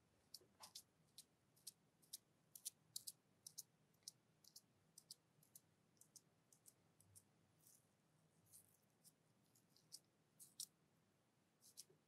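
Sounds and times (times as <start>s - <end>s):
sticky cream clicks: 0.3s - 7.2s
soft rustle: 7.6s - 10.6s.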